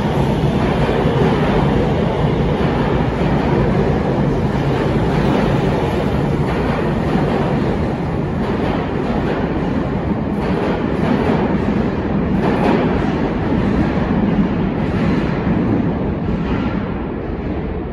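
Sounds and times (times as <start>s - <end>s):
electric train running noise: 0.0s - 16.5s.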